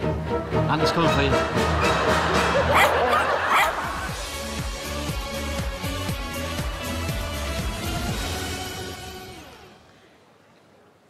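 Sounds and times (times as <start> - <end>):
background music: 0.0 - 9.9
dog barking: 2.7 - 3.8.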